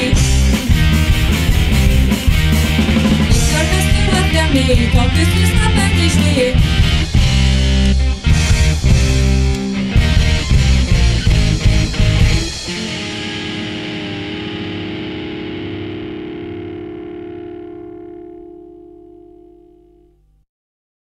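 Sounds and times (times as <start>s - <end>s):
rock band drums: 0.0s - 17.6s
distorted electric guitar chord ringing: 0.0s - 20.4s.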